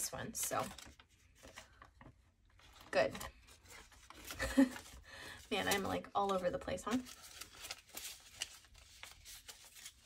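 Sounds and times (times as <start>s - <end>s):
paper banknotes rustling: 2.6s - 10.0s.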